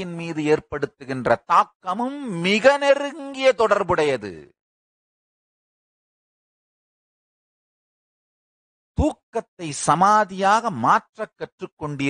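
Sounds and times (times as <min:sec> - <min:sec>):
man talking into a microphone: 0:00.0 - 0:04.6, 0:09.0 - 0:12.0.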